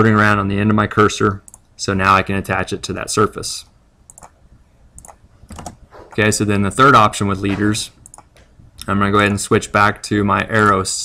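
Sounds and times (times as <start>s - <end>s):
keyboard keystrokes: 4.1s - 4.3s, 5.0s - 5.8s
mouse clicks: 4.1s - 4.4s, 5.0s - 5.8s.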